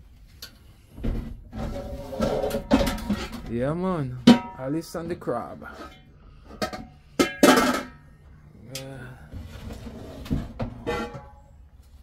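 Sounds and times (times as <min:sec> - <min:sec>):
metal pots and pans clanking: 0:01.6 - 0:03.6, 0:04.2 - 0:05.0, 0:05.6 - 0:08.1, 0:10.3 - 0:11.5.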